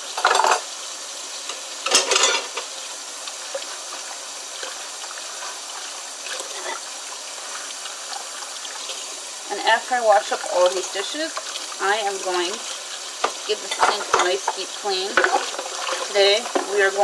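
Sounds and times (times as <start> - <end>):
tap water running into sink: 0.0 - 17.0
dishes clattering: 0.1 - 0.7, 1.5 - 2.7, 6.3 - 6.8, 13.2 - 17.0.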